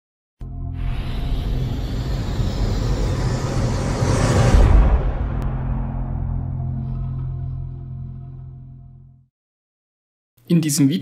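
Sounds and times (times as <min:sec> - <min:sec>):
low rumble: 0:00.7 - 0:09.3
noisy whoosh: 0:00.8 - 0:07.9.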